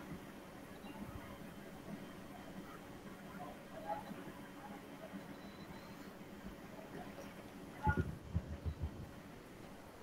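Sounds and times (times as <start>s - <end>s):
soft low thumps: 7.9s - 9.1s.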